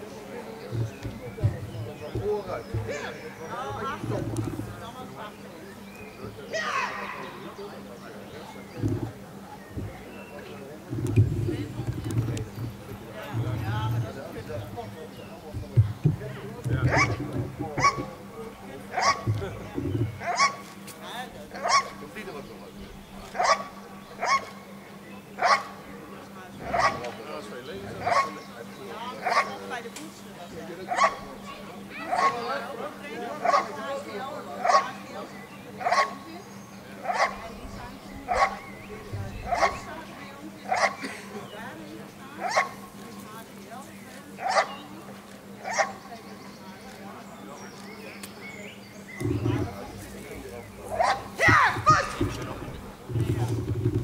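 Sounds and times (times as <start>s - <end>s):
dog barking loudly: 18.9s - 19.3s, 20.2s - 20.6s, 21.6s - 22.0s, 23.4s - 24.5s, 25.4s - 25.7s, 30.9s - 31.2s, 35.8s - 36.2s, 37.0s - 37.4s, 40.7s - 41.0s, 42.4s - 42.8s, 44.4s - 44.7s, 45.6s - 46.0s, 50.9s - 52.2s.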